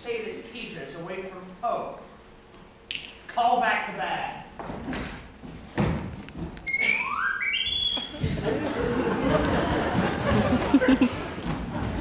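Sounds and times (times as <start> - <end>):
whistle rising short notes: 6.7 - 8.2.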